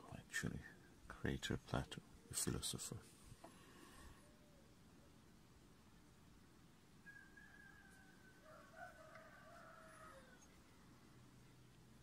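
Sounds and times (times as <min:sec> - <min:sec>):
background hiss: 0:00.0 - 0:12.0
distant animal call: 0:07.0 - 0:10.8.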